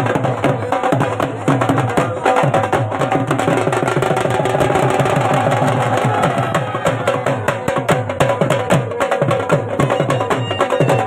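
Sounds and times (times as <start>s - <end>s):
drums beaten with sticks: 0.0s - 11.0s.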